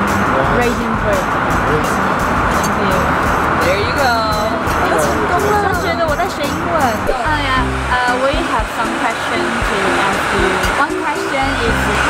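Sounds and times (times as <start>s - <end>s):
background music: 0.0s - 12.0s
woman speaking: 0.5s - 1.2s, 2.6s - 3.1s, 3.8s - 12.0s.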